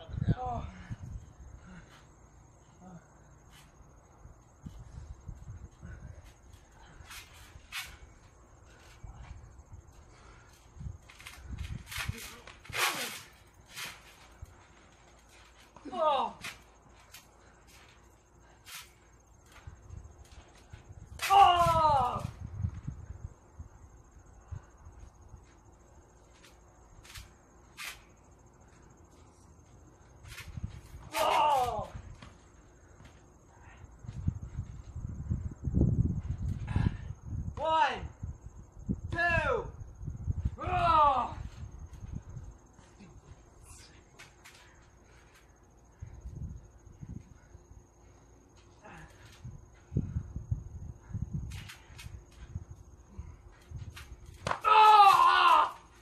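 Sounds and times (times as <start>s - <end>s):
crickets trilling: 0.0s - 56.0s
rustling swishes: 10.0s - 21.2s.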